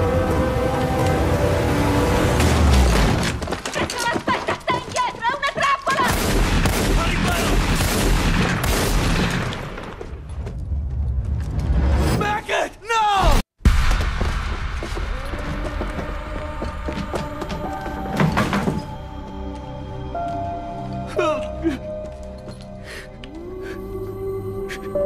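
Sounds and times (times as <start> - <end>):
dramatic film score: 0.0 - 5.4, 6.0 - 25.0
rapid gunfire: 6.0 - 9.6.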